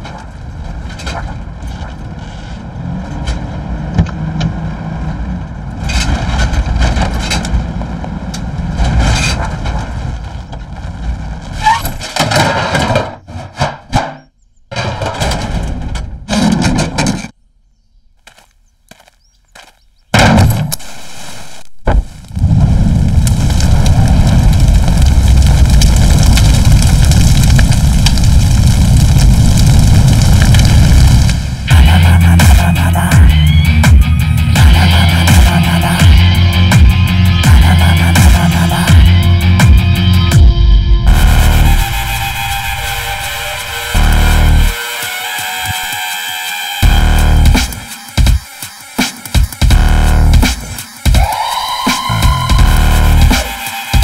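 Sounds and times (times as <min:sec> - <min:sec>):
deep rumble: 0:00.0 - 0:13.8, 0:20.2 - 0:44.8, 0:46.8 - 0:47.6, 0:49.7 - 0:50.5, 0:52.1 - 0:53.4
vehicle noise: 0:00.0 - 0:14.1, 0:18.2 - 0:48.4, 0:49.4 - 0:50.5, 0:52.0 - 0:54.0
sharp loud hits: 0:34.6 - 0:44.8.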